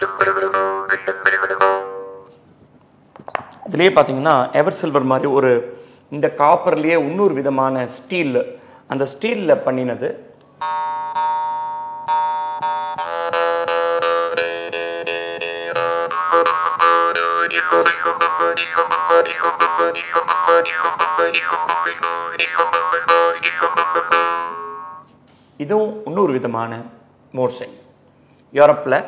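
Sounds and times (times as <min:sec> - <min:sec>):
jaw harp twangs and plucks: 0:12.1 - 0:25.1.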